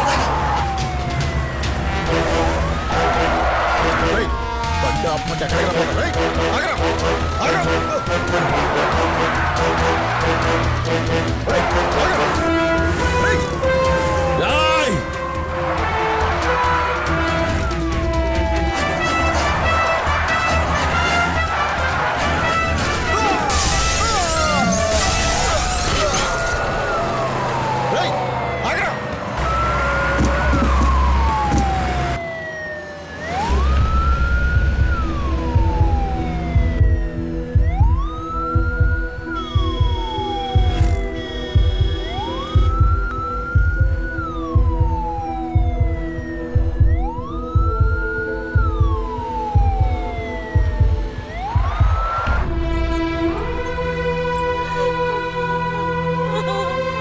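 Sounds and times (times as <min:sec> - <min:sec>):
film music with low beat: 0:00.0 - 0:24.1, 0:33.5 - 0:57.0
ambulance siren wailing: 0:00.0 - 0:57.0.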